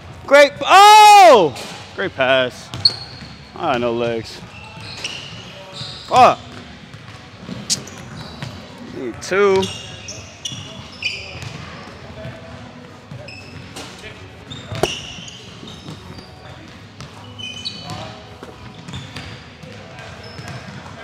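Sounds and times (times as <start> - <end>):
basketballs bouncing on wooden floor: 2.7 - 3.4, 14.7 - 17.2, 17.8 - 21.0
sneaker squeaks: 2.7 - 3.8, 4.4 - 21.0.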